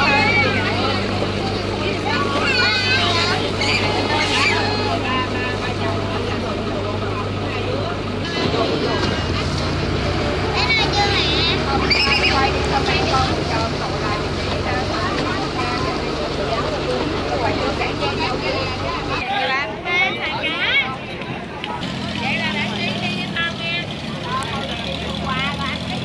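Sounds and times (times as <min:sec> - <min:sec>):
boat engine humming: 0:00.0 - 0:26.0
people talking: 0:00.0 - 0:26.0.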